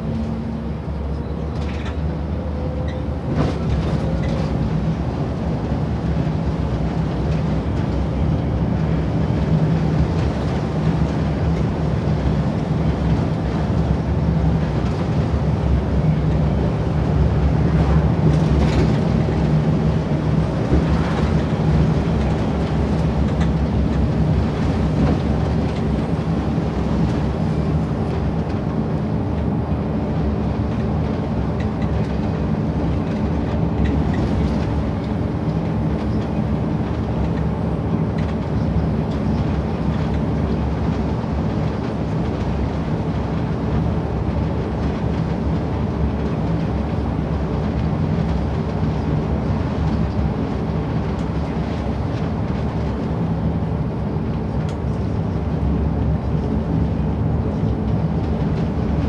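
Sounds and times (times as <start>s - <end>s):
bus engine hum: 0.0s - 59.0s
road noise: 0.0s - 59.0s.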